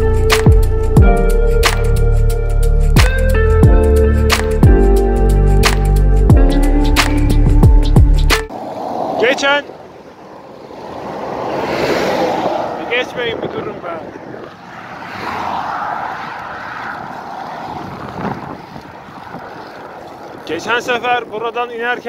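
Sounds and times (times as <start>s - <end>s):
road traffic: 0.0s - 21.7s
wind rushing over microphone: 8.4s - 22.0s.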